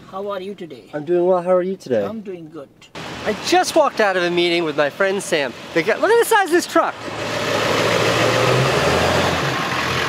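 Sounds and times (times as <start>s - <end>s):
street noise: 1.8s - 10.0s
truck engine running: 6.9s - 10.0s.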